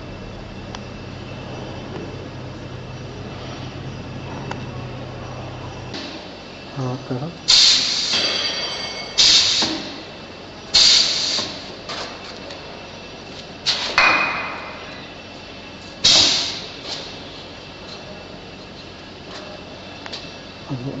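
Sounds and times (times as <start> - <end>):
compressed air hisses: 7.5 - 8.4, 9.2 - 10.0, 10.7 - 11.8, 16.0 - 17.2.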